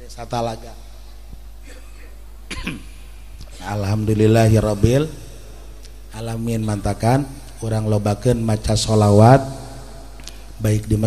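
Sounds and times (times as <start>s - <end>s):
man coughing: 1.6s - 3.0s.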